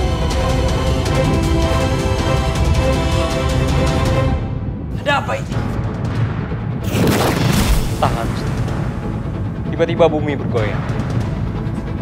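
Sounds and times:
dramatic music: 0.0s - 12.0s.

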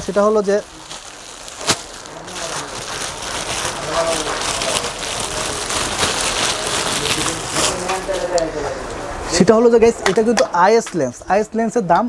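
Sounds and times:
plastic wrapping crinkling: 0.0s - 9.0s.

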